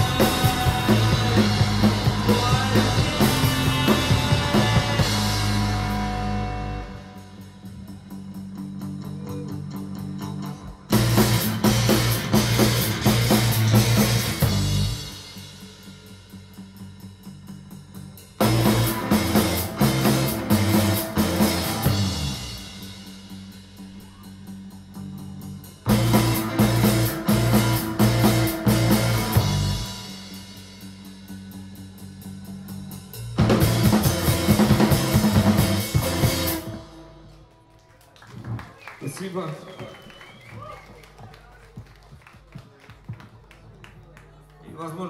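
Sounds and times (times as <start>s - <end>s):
live rock band playing: 0.0s - 37.7s.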